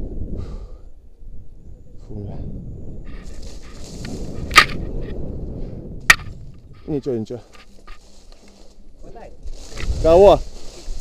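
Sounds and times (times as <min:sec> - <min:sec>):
wind rumble on microphone: 0:00.0 - 0:11.0
camera handling noise: 0:04.0 - 0:05.2
sharp click: 0:04.5 - 0:04.8.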